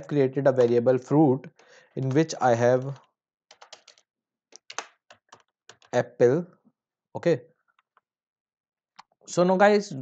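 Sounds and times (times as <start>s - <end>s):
keyboard keystrokes: 2.0s - 4.0s, 4.6s - 6.0s.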